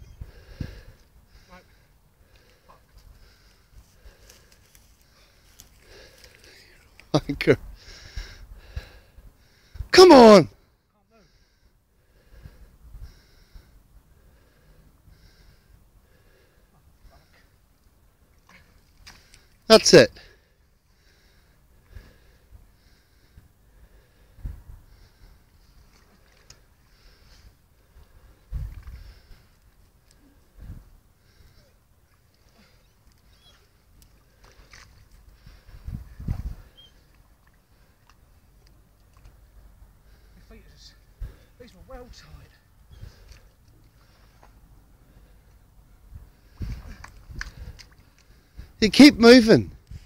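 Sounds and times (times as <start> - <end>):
waders squelching in mud: 32.4 - 35.6.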